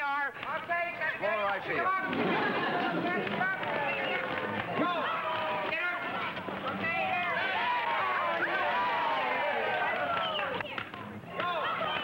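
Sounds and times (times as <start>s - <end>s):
spectators shouting and cheering: 1.2s - 12.0s.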